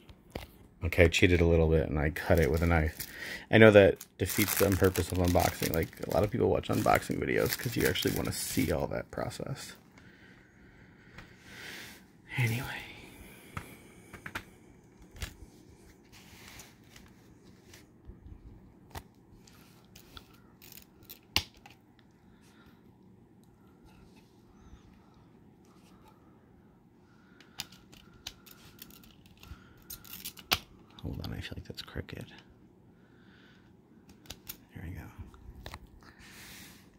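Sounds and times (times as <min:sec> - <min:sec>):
faint handling noise: 0:02.0 - 0:10.2, 0:12.3 - 0:26.4.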